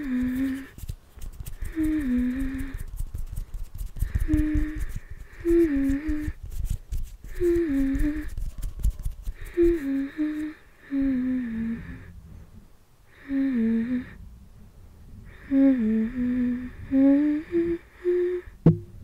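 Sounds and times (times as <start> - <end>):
woman humming: 0.0 - 0.7, 1.6 - 2.9, 4.0 - 6.4, 7.3 - 8.3, 9.4 - 12.0, 13.2 - 14.2, 15.3 - 18.6
fingertips rubbing microphone grille: 0.0 - 10.4.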